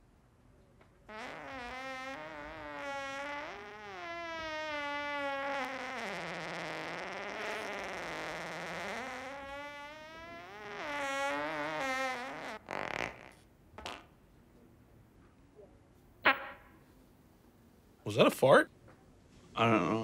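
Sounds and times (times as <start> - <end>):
man farting: 1.1 - 14.1.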